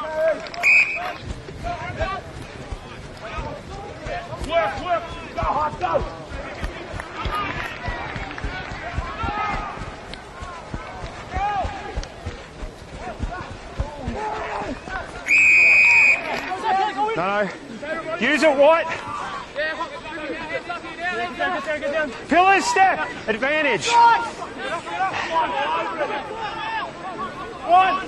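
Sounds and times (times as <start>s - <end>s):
players and spectators shouting: 0.0s - 17.2s, 17.8s - 28.0s
referee's whistle blast: 0.6s - 1.2s, 15.2s - 16.4s
wind buffeting microphone: 1.0s - 15.2s.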